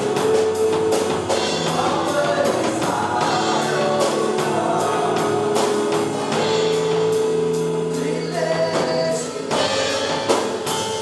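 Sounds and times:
worship band playing slow song: 0:00.0 - 0:11.0
person singing: 0:01.3 - 0:07.0, 0:07.8 - 0:10.6.

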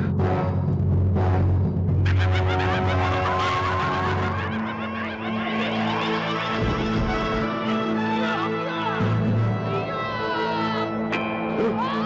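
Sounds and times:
sustained cartoon music: 0:00.0 - 0:12.0.

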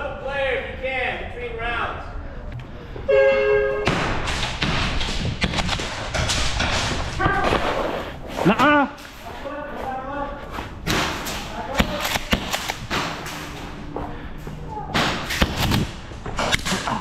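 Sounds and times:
sharp knocks and thuds: 0:03.9 - 0:07.8.

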